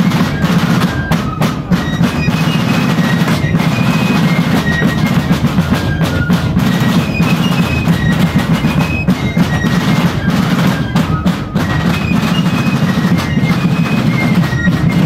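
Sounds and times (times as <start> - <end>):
field drums beating: 0.0 - 15.0
fife melody: 0.0 - 15.0.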